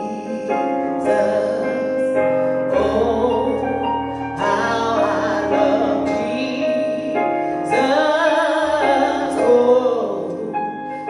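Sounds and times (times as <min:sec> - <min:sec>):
person singing a hymn: 0:00.0 - 0:11.0
piano accompaniment: 0:00.0 - 0:11.0.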